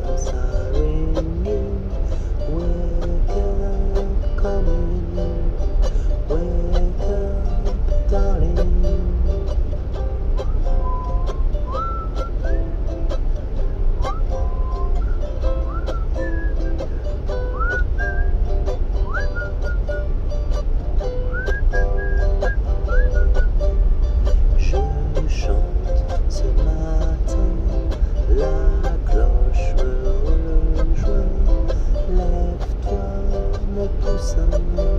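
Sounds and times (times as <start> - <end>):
passenger train rumbling: 0.0 - 34.9
ukulele lullaby: 0.0 - 34.9
whistled melody: 10.4 - 13.2, 14.0 - 20.1, 21.1 - 23.8.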